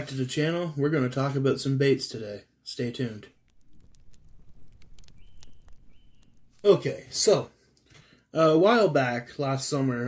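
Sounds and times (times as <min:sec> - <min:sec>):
faint crackling clicks: 0:03.2 - 0:08.1
low rumble: 0:03.3 - 0:06.9.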